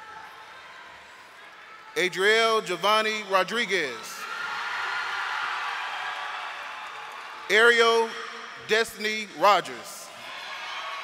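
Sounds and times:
crowd applause: 4.4s - 8.2s.

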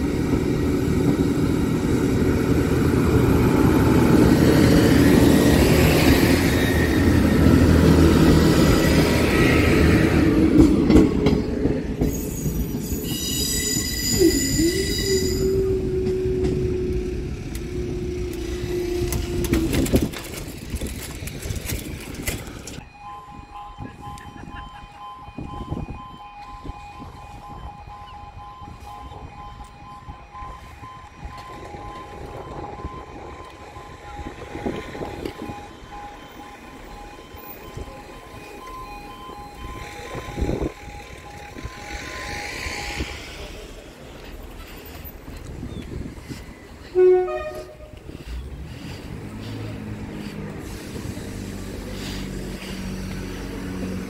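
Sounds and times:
crossing warning alarm: 0.0s - 20.2s, 22.7s - 44.3s, 46.1s - 49.5s
train engine and wheels on rails: 0.0s - 54.0s
high wheel squeal: 12.0s - 19.2s.

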